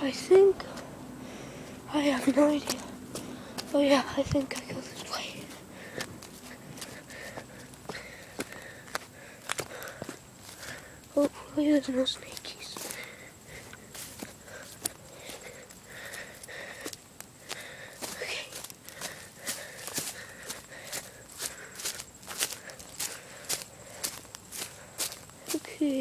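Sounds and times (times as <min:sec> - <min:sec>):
footsteps through dry leaves and twigs: 0:02.4 - 0:26.0.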